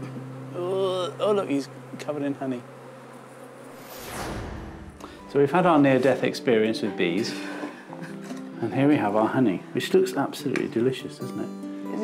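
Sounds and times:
bees buzzing: 0.0s - 12.0s
falling whoosh: 3.8s - 5.0s.

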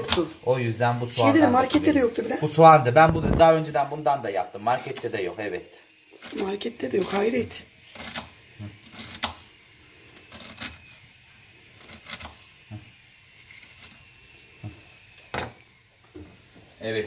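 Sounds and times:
knife slicing onion: 6.1s - 15.5s.

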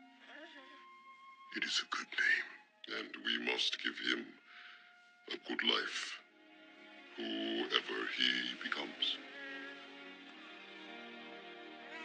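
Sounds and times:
soft music: 0.0s - 12.0s.

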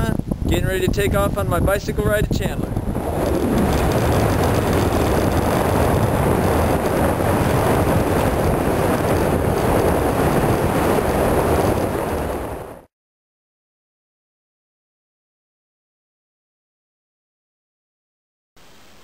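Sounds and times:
wind rushing over microphone: 0.0s - 12.9s.

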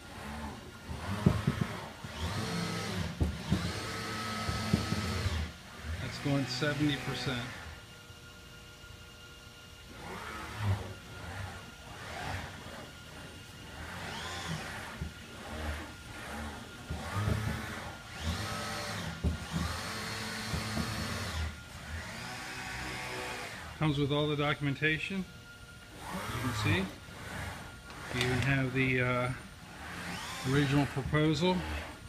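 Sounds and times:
robot motors whining: 0.0s - 7.8s, 9.8s - 24.0s, 25.8s - 32.0s.

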